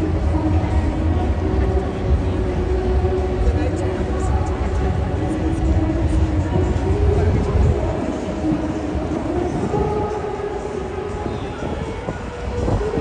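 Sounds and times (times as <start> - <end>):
crowd chatter: 0.0 - 13.0
steady hum: 0.0 - 13.0.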